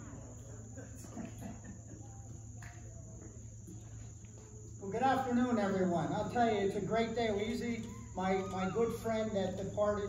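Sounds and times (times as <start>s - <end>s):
insects chirring: 0.0s - 10.0s.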